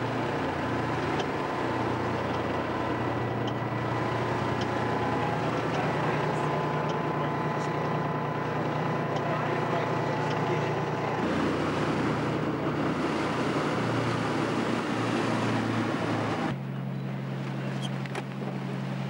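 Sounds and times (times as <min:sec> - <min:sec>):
boat engine droning: 0:00.0 - 0:19.0.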